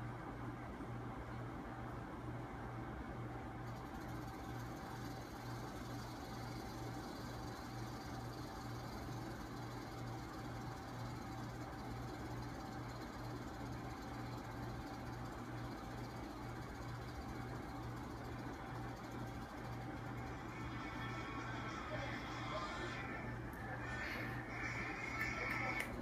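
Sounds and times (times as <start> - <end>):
pulsing mechanical hum: 0.0 - 26.0
thin steady whine: 0.0 - 26.0.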